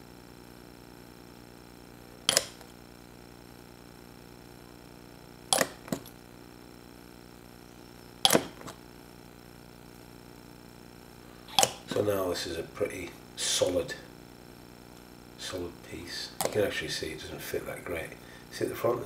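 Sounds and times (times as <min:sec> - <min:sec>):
faint steady hum: 0:00.0 - 0:19.0
sharp plastic clicks: 0:02.3 - 0:02.7, 0:08.2 - 0:08.8.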